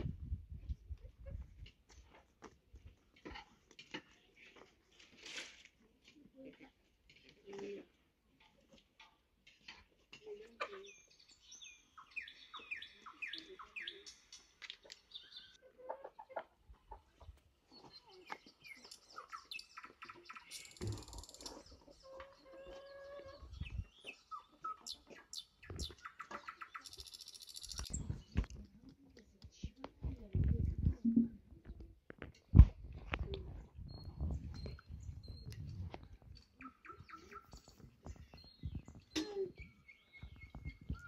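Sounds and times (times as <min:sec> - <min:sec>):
small birds chirping: 0:10.2 - 0:15.7, 0:16.9 - 0:30.3, 0:33.1 - 0:41.0.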